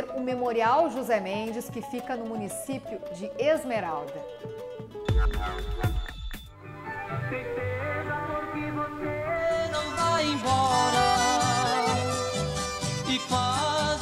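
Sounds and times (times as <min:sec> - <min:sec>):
folk music with accordion: 0:06.8 - 0:14.0.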